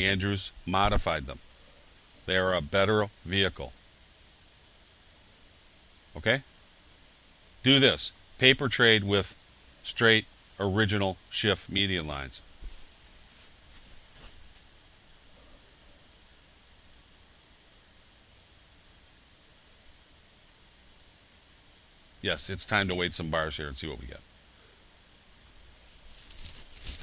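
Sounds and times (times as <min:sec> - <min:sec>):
recording hiss: 0:00.0 - 0:27.0.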